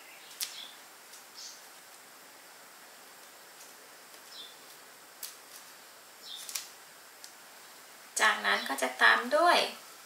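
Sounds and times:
background hiss: 0:00.0 - 0:10.0
stems and tape rustling: 0:00.1 - 0:02.2, 0:02.8 - 0:09.7.

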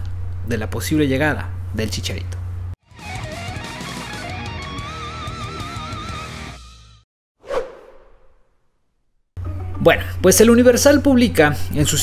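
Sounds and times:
electric guitar music: 0:02.9 - 0:07.0
whoosh transition effect: 0:07.4 - 0:08.6.

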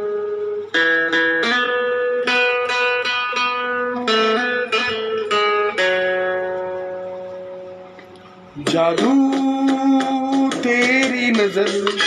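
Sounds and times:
plucked-string chord ringing: 0:00.0 - 0:09.0.

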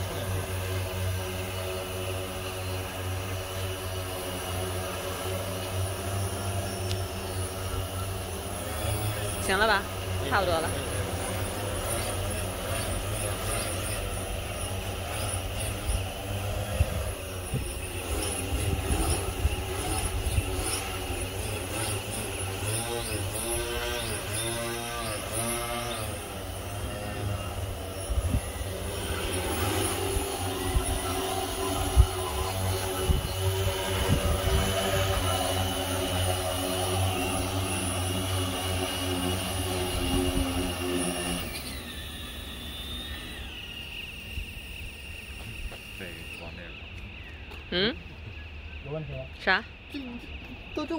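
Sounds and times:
drone propellers droning: 0:00.0 - 0:50.9.

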